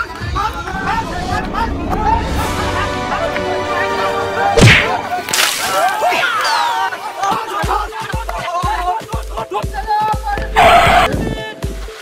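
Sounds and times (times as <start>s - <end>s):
person splashing into water: 4.6s - 6.7s.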